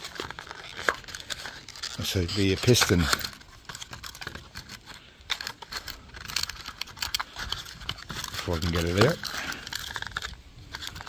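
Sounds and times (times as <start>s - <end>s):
cardboard box crinkling: 0.0s - 11.0s.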